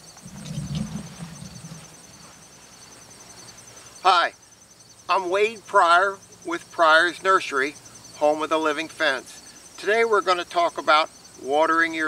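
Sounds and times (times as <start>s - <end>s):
insects chirping: 0.0s - 12.0s
low sound: 0.2s - 2.0s.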